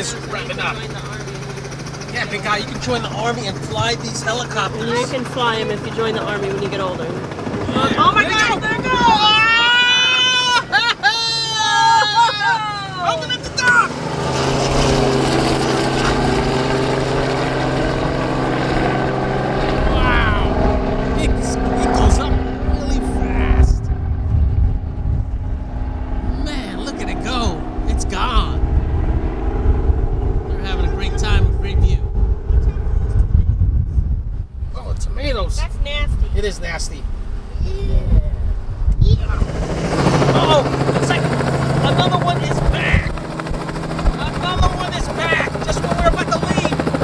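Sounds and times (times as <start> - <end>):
helicopter rotor and engine drone: 0.0 - 47.0
rough low rumble: 12.7 - 47.0.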